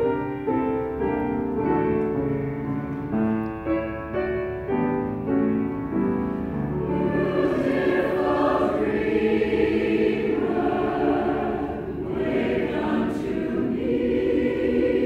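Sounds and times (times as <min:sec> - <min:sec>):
men's choir singing: 0:06.9 - 0:15.0.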